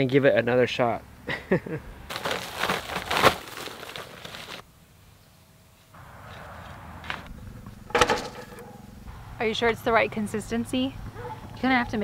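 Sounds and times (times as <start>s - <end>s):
plastic bag crinkling: 2.1s - 4.6s.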